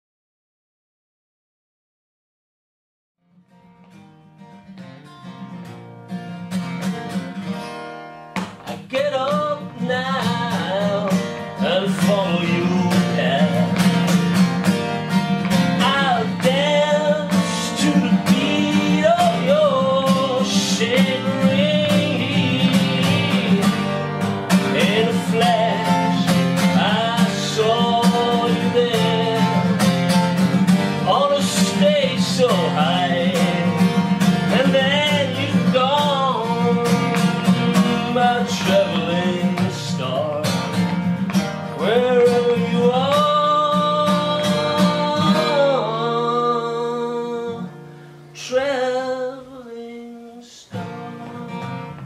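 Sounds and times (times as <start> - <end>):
acoustic guitar strumming: 3.2 - 52.0
man singing: 8.5 - 52.0.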